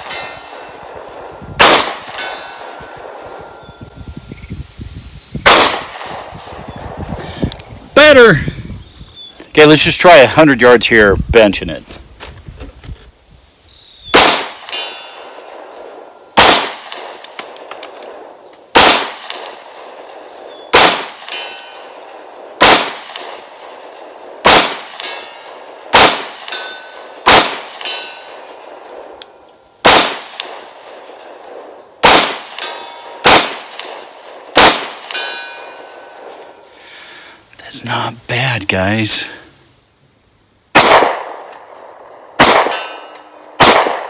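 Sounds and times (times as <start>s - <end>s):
pistol shots with ringing tail: 0.0s - 3.8s, 5.4s - 6.6s, 14.1s - 29.1s, 29.8s - 36.3s, 40.7s - 44.0s.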